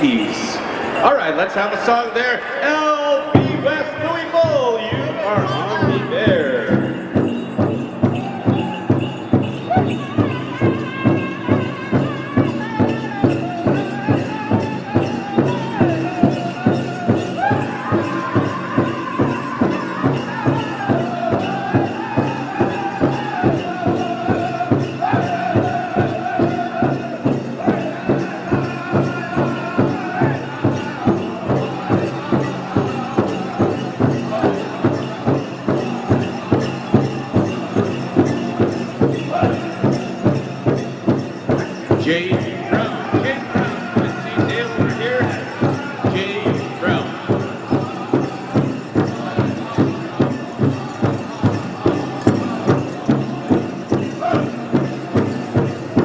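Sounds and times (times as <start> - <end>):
drum group singing: 2.7 - 56.0.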